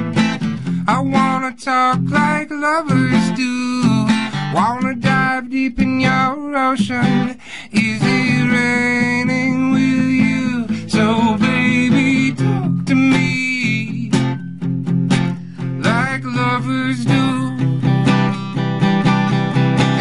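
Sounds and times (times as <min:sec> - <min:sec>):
strummed acoustic guitar: 0:00.0 - 0:20.0
person singing: 0:00.6 - 0:14.4, 0:15.6 - 0:18.6, 0:19.8 - 0:20.0.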